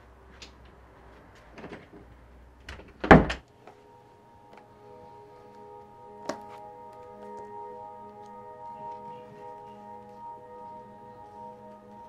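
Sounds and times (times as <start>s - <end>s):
door thud: 2.7s - 3.4s.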